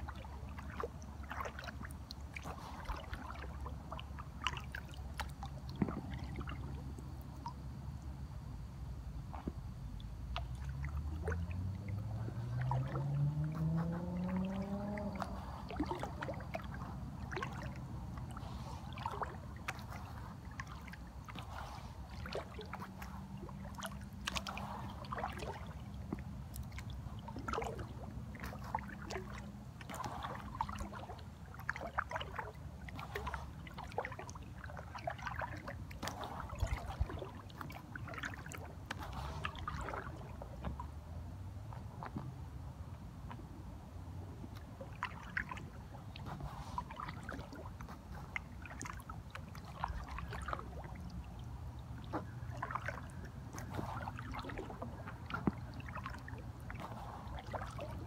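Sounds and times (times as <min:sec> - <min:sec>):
paddle splashing in water: 0:00.0 - 0:07.6, 0:09.3 - 0:58.0
steady low hum: 0:00.0 - 0:58.0
low drone rising in pitch: 0:10.7 - 0:15.4.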